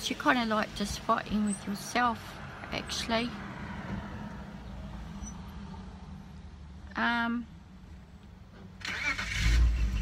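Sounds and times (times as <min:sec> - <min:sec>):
car engine rumble: 0:00.0 - 0:10.0.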